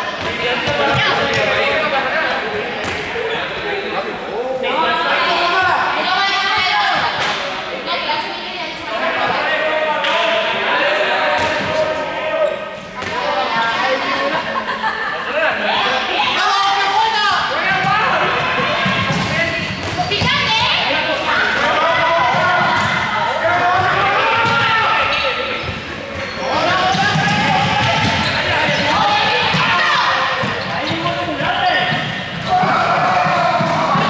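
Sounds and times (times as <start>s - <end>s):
balls bouncing on hall floor: 0.1s - 2.0s, 2.8s - 3.1s, 13.0s - 13.7s, 17.5s - 34.0s
players shouting: 15.6s - 34.0s.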